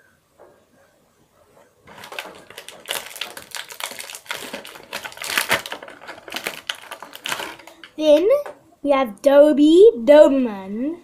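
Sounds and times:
plastic packaging crinkling: 1.8s - 8.2s.

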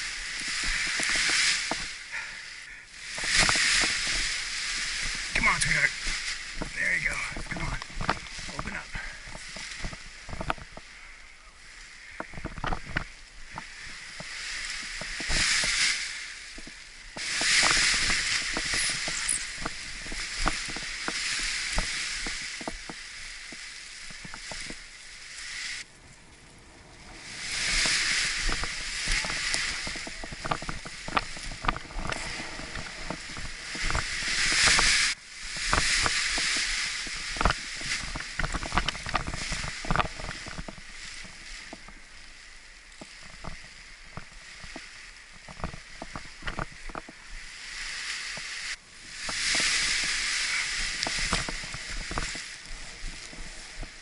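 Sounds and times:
paraglider wing crackling: 0.0s - 54.0s
wind on microphone: 3.0s - 54.0s.

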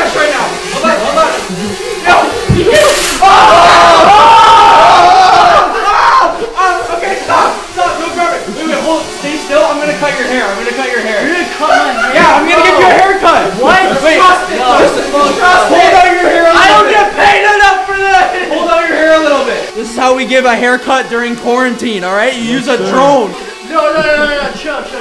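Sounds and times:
drone buzzing: 0.0s - 25.0s
young men yelling and laughing: 0.0s - 25.0s
long scream: 2.6s - 6.6s.

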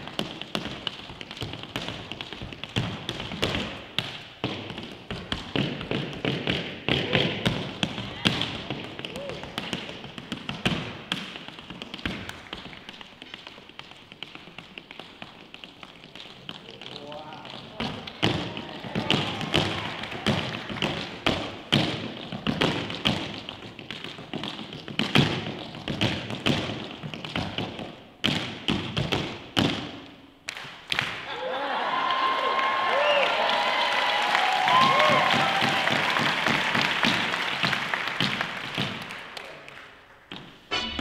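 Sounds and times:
tap shoes on hard floor: 0.0s - 30.0s.

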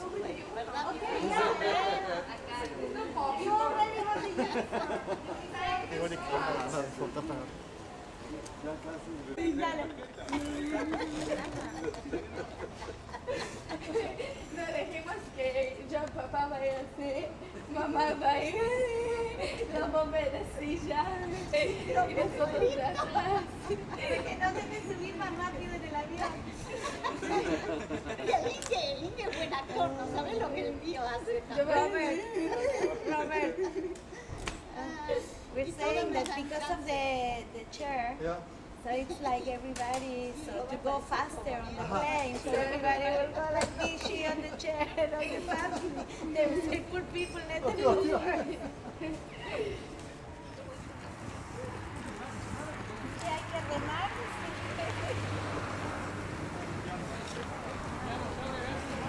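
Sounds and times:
group chatter: 0.0s - 59.0s
people laughing: 4.0s - 5.7s, 9.4s - 14.9s, 21.3s - 25.1s, 26.2s - 30.6s, 31.3s - 34.3s, 41.7s - 50.8s.

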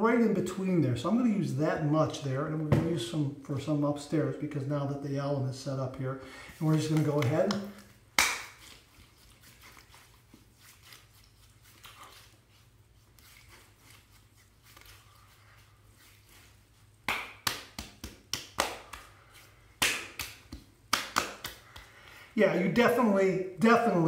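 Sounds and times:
hands rubbing balm on face: 6.4s - 23.1s
palms slapping face: 6.6s - 8.9s, 17.0s - 22.2s.

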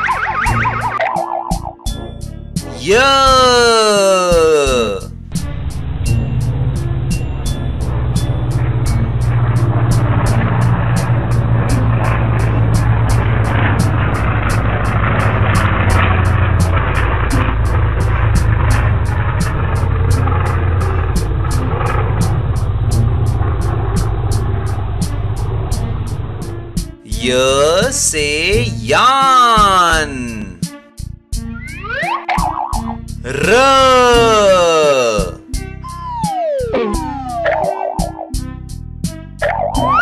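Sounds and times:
propeller airplane engine drone: 5.2s - 27.0s.

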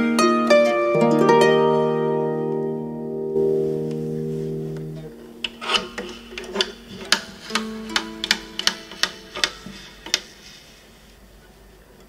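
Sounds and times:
harp strings faintly ringing: 0.9s - 10.2s.

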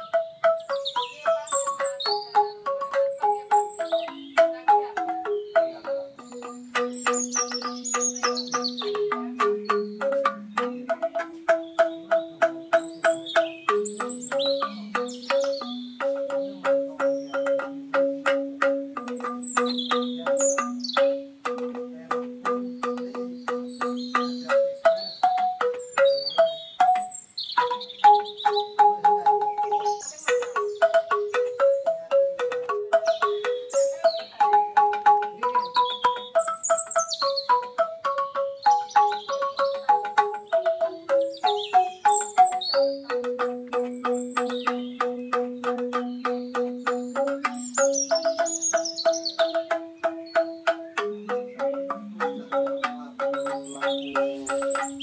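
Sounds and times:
bamboo xylophone ensemble music: 0.0s - 55.0s
birds chirping faintly: 0.0s - 55.0s.

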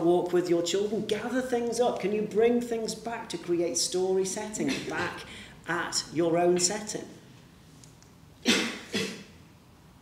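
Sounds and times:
person coughing: 4.6s - 5.2s, 8.4s - 9.3s.

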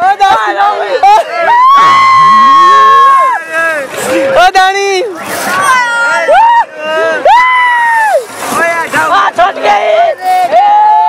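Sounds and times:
excited voices: 0.0s - 11.0s.

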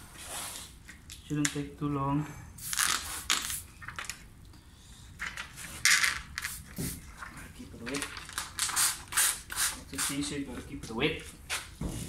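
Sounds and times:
spray bottle hissing sprays: 2.6s - 3.7s, 6.4s - 7.0s, 8.6s - 10.3s.

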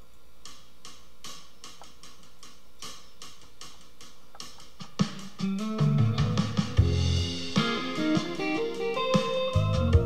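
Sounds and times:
hi-hat strokes: 0.0s - 10.0s.

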